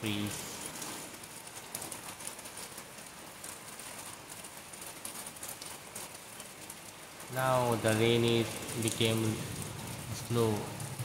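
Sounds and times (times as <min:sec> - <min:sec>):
light rain on leaves: 0:00.0 - 0:11.0.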